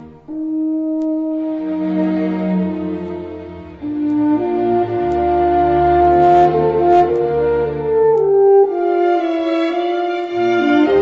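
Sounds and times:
slow instrumental music: 0.0s - 11.0s.

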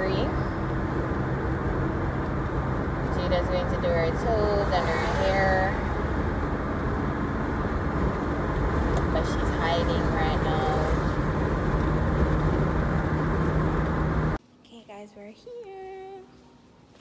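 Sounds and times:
car road and engine noise: 0.0s - 14.4s.

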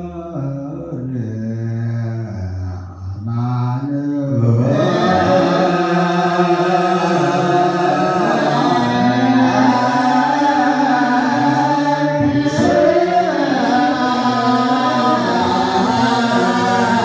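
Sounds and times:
men singing liturgical chant: 0.0s - 17.0s.

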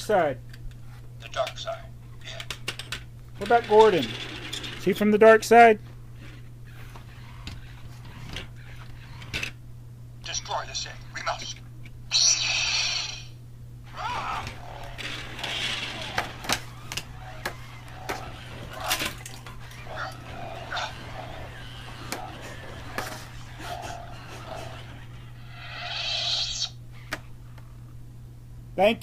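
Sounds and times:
steady low hum: 0.0s - 29.0s
toy motor whirring: 6.2s - 9.6s, 12.1s - 27.1s.

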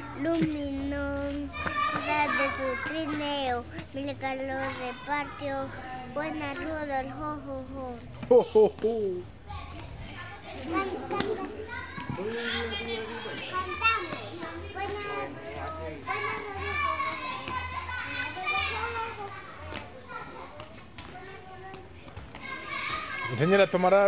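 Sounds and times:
young children chattering: 0.0s - 23.4s.

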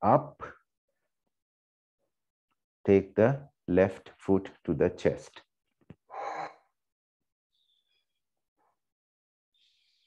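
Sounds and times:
person exhaling: 6.1s - 6.6s.

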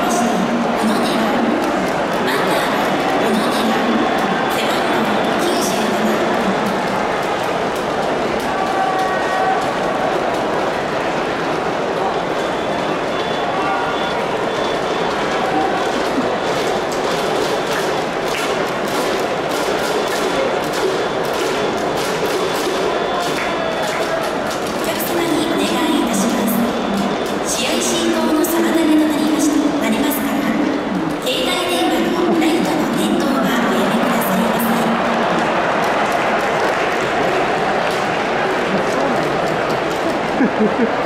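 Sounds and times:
crowd hubbub: 0.0s - 41.0s
scattered claps and knocks: 0.6s - 13.4s, 14.4s - 27.6s, 33.9s - 41.0s.

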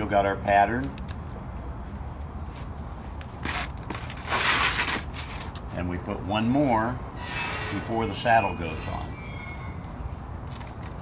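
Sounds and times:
shingle scraping over shingles: 3.4s - 5.6s.

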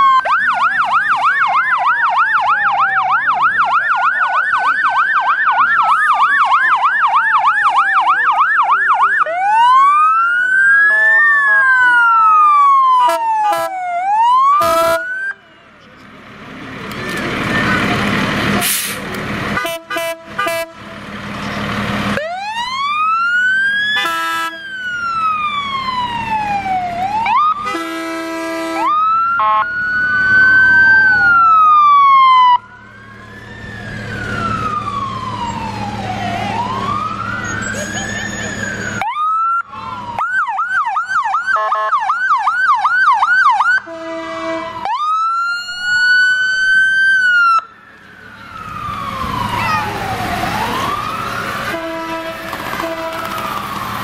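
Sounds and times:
emergency vehicle sirens: 0.0s - 54.0s
short horn blasts: 14.6s - 15.1s, 19.6s - 20.9s, 24.0s - 24.6s, 27.6s - 29.6s, 43.9s - 44.8s, 51.7s - 53.3s.

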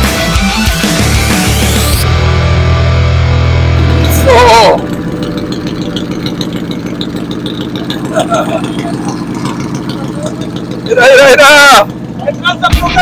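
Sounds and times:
motorcycle engine idling: 0.7s - 13.0s.

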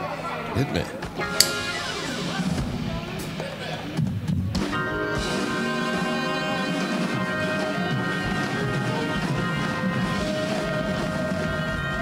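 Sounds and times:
live band music: 1.2s - 12.0s.

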